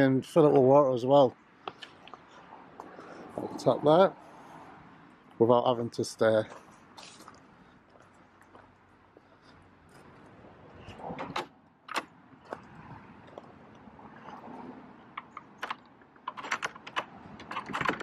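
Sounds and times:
footsteps on gravel: 6.4s - 10.3s.

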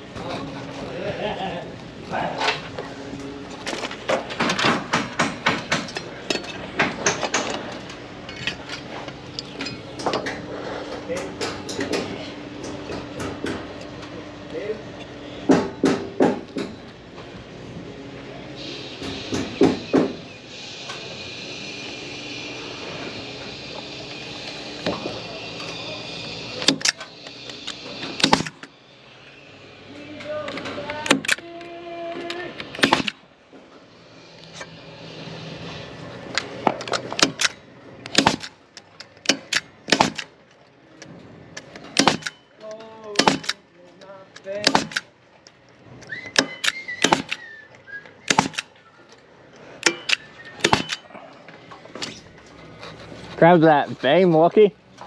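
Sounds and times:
steady machine hum: 0.0s - 55.0s
nail gun firing: 4.2s - 6.0s, 26.6s - 27.0s, 28.1s - 28.6s, 31.0s - 31.4s, 32.6s - 33.2s, 36.9s - 38.6s, 39.2s - 40.3s, 41.9s - 42.4s, 43.1s - 43.6s, 44.5s - 45.1s, 46.4s - 47.4s, 48.3s - 48.7s, 49.8s - 51.0s.

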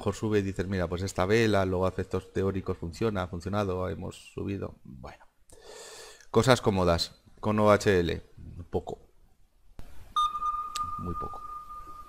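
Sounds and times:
steady electronic tone: 10.2s - 12.0s.

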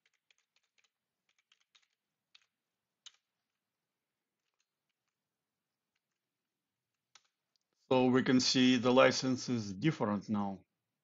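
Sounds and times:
faint keyboard keystrokes: 0.0s - 3.6s.

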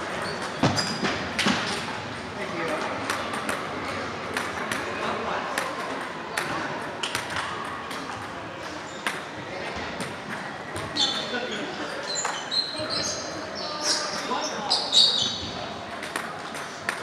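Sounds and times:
table tennis ball hits: 0.4s - 3.7s, 4.3s - 4.9s, 5.5s - 9.3s, 15.9s - 17.0s.

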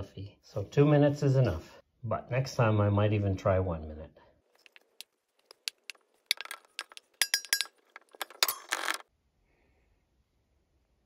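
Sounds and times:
glass jar knocking and clinking: 5.5s - 9.0s.

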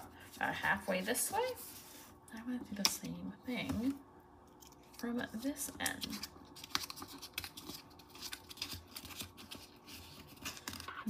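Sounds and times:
paper rustling and crackling: 4.6s - 11.0s.

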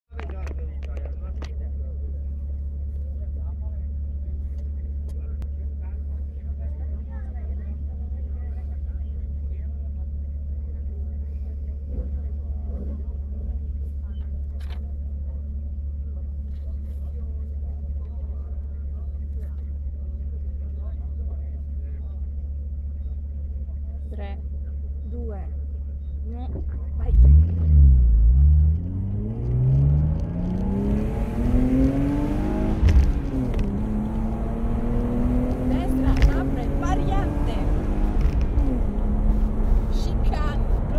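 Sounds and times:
car engine idling: 0.2s - 40.9s.

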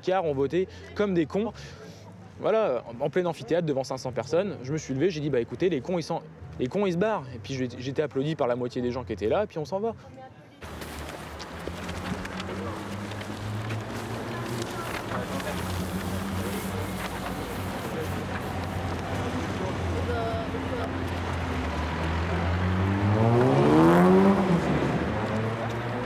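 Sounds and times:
vehicle engine humming: 10.6s - 26.0s
car engine revving: 11.5s - 26.0s.

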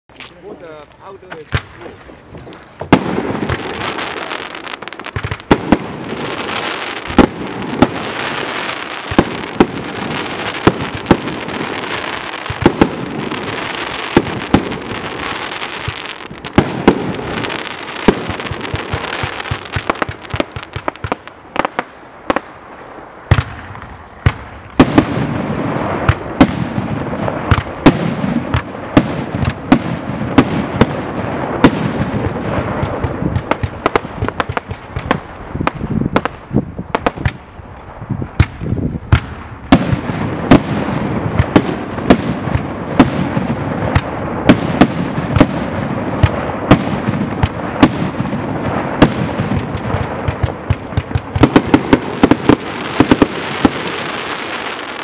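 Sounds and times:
firework launch reports and breaks: 0.1s - 55.0s
steady firework hiss: 0.1s - 55.0s.

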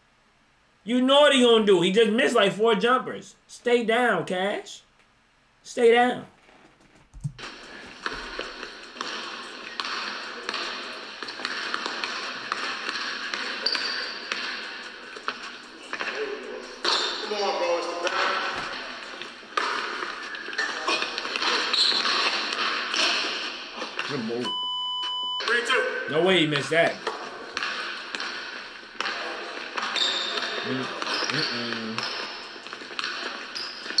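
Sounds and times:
basketball dribbling on hardwood: 7.0s - 14.5s
steady beep: 24.4s - 26.0s.

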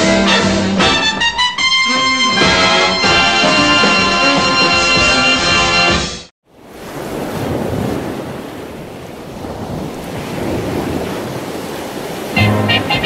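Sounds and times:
sea surf washing on shore: 6.5s - 13.0s
short music passage: 12.4s - 13.0s.

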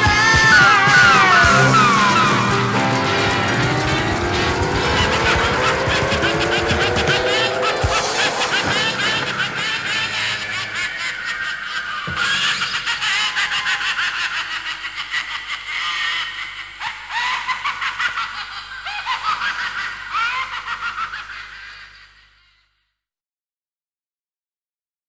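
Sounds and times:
people laughing and squealing: 0.0s - 22.2s.

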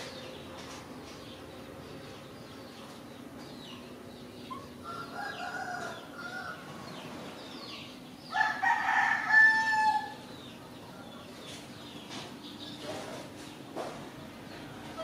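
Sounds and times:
rooster crowing: 4.8s - 6.7s, 8.3s - 10.2s.

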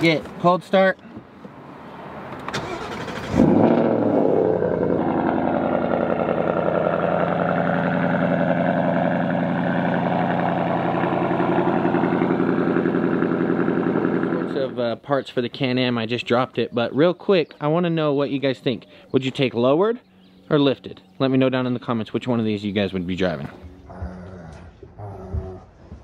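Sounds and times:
car engine starting and idling: 2.2s - 14.8s.

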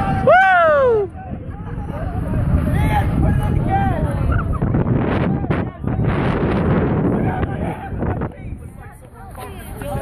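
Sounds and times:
people's voices and shouts: 0.0s - 10.0s
wind buffeting microphone: 0.0s - 10.0s.

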